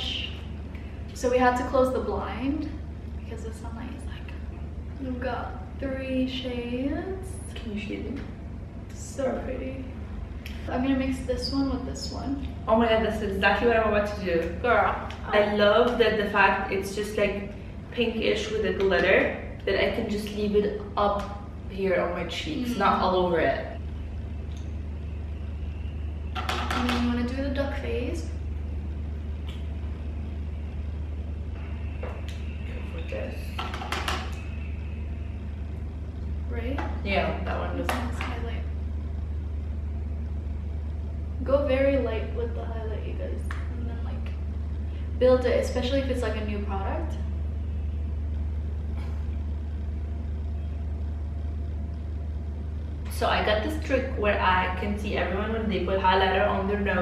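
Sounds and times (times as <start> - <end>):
woman speaking: 0.0 - 0.5, 1.2 - 8.3, 8.9 - 10.0, 10.6 - 23.8, 26.6 - 28.4, 32.7 - 33.6, 36.5 - 38.8, 41.4 - 44.4, 45.2 - 47.2, 53.1 - 57.0
low room hum: 0.0 - 57.0.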